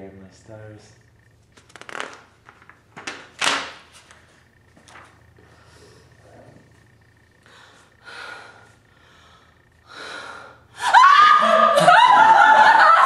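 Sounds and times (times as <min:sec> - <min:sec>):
woman laughing: 0:10.8 - 0:13.0.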